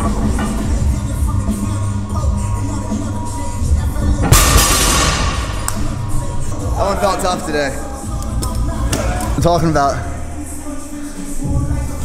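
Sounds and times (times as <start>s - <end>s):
background music: 0.0s - 12.0s
barbell crashing on floor: 4.2s - 5.7s.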